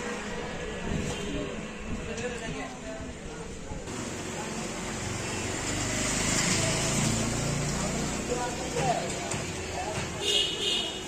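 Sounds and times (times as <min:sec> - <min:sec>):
motor vehicle passing: 0:04.0 - 0:09.2.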